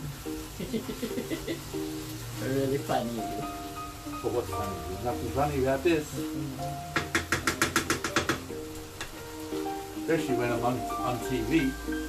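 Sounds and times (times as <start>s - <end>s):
background music with held notes: 0.0s - 12.0s
wooden spoon knocking metal pan: 6.9s - 9.2s.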